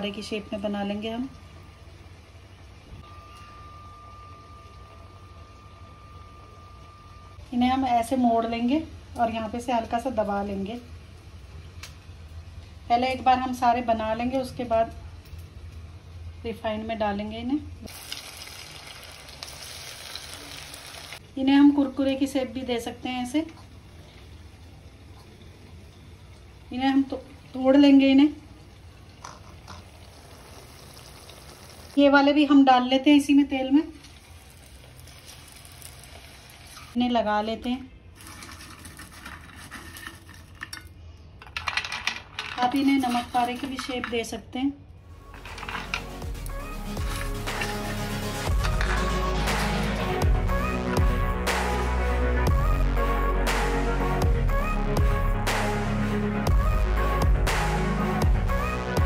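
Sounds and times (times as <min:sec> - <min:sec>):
low hum: 0:00.0 - 0:10.2
thin high whine: 0:02.9 - 0:07.7.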